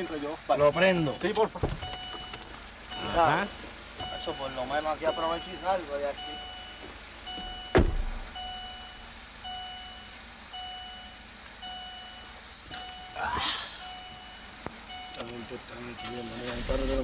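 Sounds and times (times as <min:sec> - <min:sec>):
car warning chime beeping: 0:00.0 - 0:17.0
sharp thump: 0:07.7 - 0:08.3.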